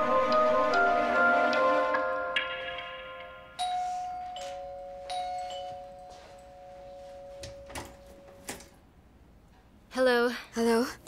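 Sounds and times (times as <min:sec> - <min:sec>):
two-tone doorbell chime: 0:00.0 - 0:08.7.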